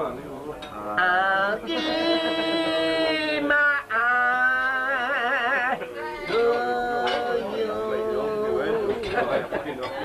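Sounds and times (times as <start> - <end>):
man singing: 0.9 - 9.3.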